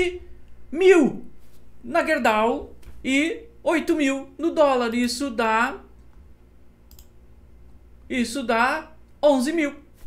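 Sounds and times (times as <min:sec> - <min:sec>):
low steady hum: 0:00.0 - 0:10.0
computer mouse clicks: 0:06.9 - 0:07.2.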